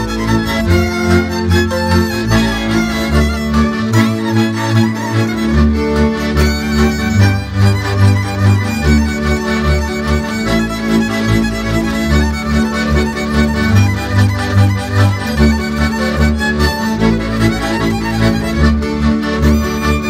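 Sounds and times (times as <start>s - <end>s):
chordal string accompaniment: 0.0s - 20.0s
deep pulsing bass: 0.0s - 20.0s
fiddle melody: 0.0s - 20.0s.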